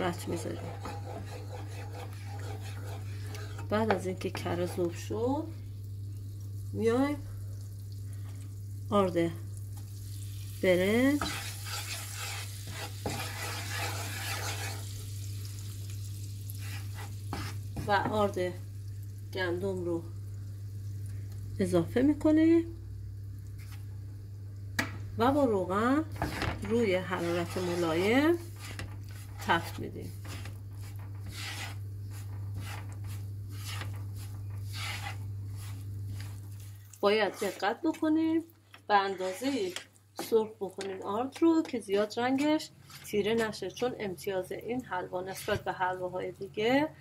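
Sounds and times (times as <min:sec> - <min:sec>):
flour sizzling in butter: 0:00.0 - 0:22.2, 0:25.3 - 0:44.2
wooden spoon strokes in pan: 0:00.1 - 0:05.1, 0:10.1 - 0:15.0, 0:16.4 - 0:18.0, 0:23.6 - 0:23.9, 0:26.2 - 0:38.1, 0:39.0 - 0:40.4.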